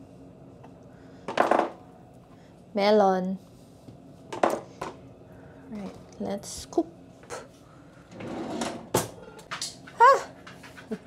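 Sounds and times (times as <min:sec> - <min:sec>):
drawer sliding: 0:08.1 - 0:09.4.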